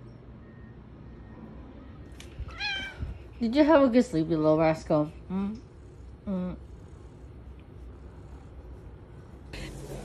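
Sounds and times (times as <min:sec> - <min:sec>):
cat meowing: 0:02.5 - 0:03.2.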